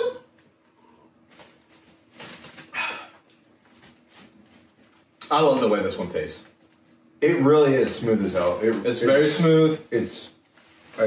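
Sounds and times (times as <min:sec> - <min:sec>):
men huffing and exhaling: 0:02.7 - 0:03.2.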